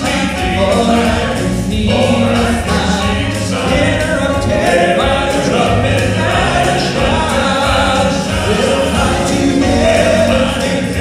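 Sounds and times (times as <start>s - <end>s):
male quartet singing in harmony: 0.0s - 11.0s
piano: 0.0s - 11.0s.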